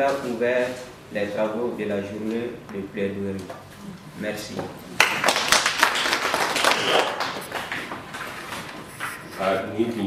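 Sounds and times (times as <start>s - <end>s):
people applauding: 5.0s - 8.1s.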